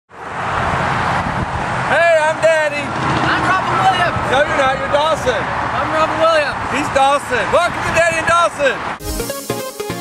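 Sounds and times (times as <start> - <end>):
road traffic rumble: 0.1 - 9.0.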